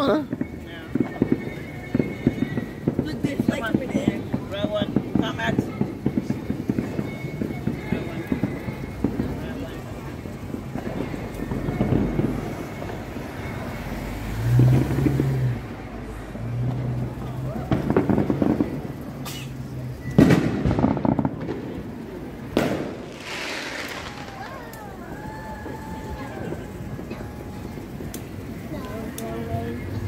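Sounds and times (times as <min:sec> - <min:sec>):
fireworks bangs: 0:00.0 - 0:30.0
street noise: 0:00.0 - 0:30.0.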